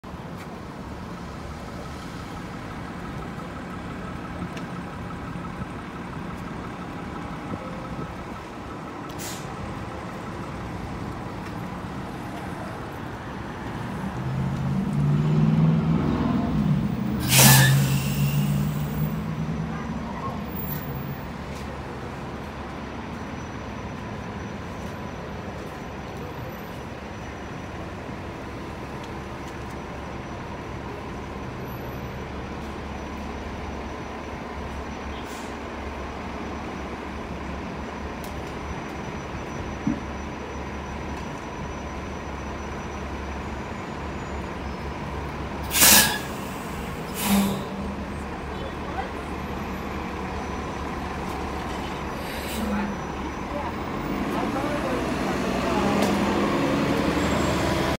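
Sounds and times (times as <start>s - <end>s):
diesel bus engine idling: 0.1s - 14.3s, 17.8s - 57.9s
compressed air hiss: 45.7s - 47.7s.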